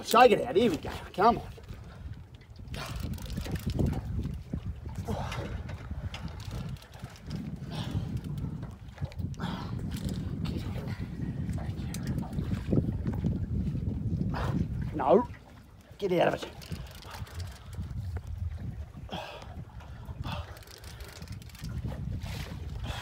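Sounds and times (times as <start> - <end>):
wind rumbling on microphone: 0.0 - 23.0.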